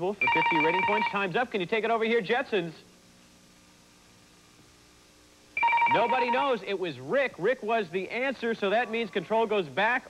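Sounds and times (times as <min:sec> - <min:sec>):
electronic time-up ring: 0:00.2 - 0:01.2, 0:05.6 - 0:06.6.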